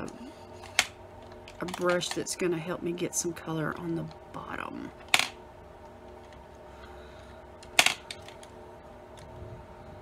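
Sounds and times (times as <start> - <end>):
makeup brushes clattering: 0.7 - 2.4.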